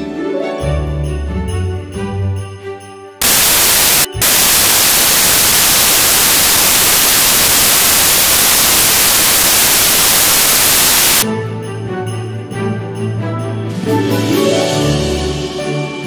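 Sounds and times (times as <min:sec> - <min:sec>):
christmas music: 0:00.0 - 0:10.4, 0:11.2 - 0:16.0
loud static hiss: 0:03.2 - 0:11.2.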